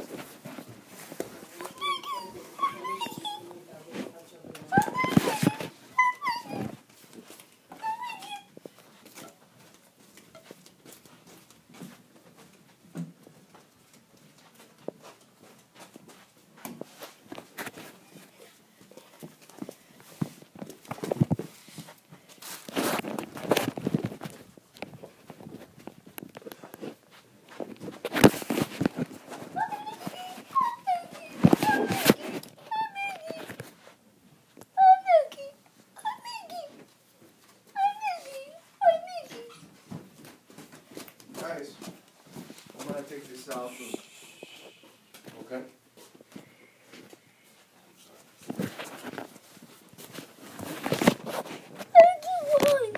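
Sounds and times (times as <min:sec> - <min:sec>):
footsteps on hard floor: 0:00.0 - 0:32.6, 0:39.3 - 0:44.0
rustling: 0:00.0 - 0:52.9
soft murmuring: 0:01.4 - 0:06.8, 0:43.1 - 0:45.8
high-pitched whimpering cries: 0:01.6 - 0:03.6, 0:04.7 - 0:06.8, 0:07.7 - 0:08.6, 0:29.6 - 0:33.6, 0:34.8 - 0:36.8, 0:37.8 - 0:39.6.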